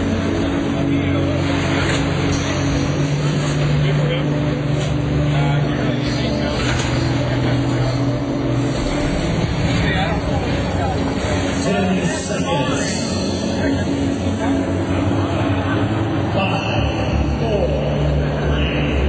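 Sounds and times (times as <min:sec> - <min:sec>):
onlookers chattering: 0:00.0 - 0:19.0.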